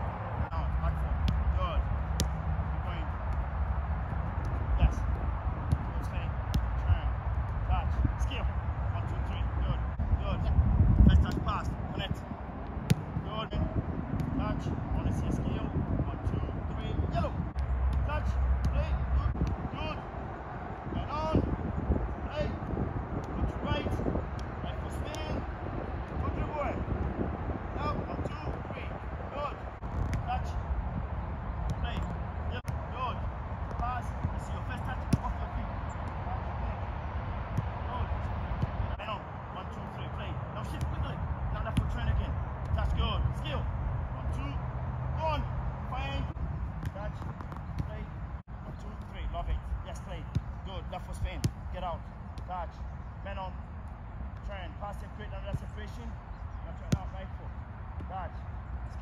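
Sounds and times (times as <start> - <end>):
soccer ball being kicked: 0.4 - 20.0, 21.0 - 30.6, 31.4 - 43.6, 45.4 - 52.9, 54.2 - 56.0, 56.7 - 58.3.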